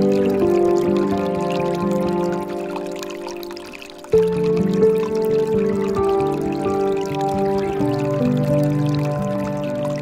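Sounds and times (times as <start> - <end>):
slow relaxation music: 0.0 - 10.0
water pouring into a pool: 0.0 - 10.0.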